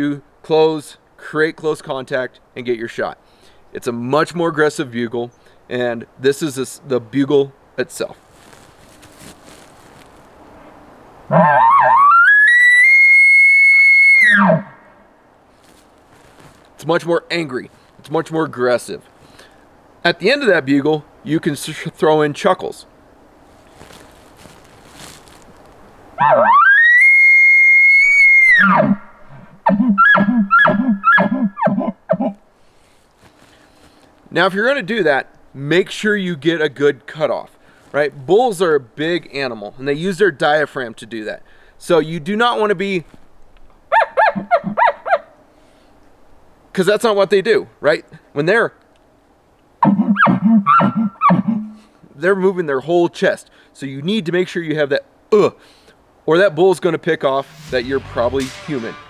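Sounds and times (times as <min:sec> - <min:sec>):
elk bugle call whistle: 0:11.3 - 0:14.8, 0:29.7 - 0:32.4, 0:49.8 - 0:51.9.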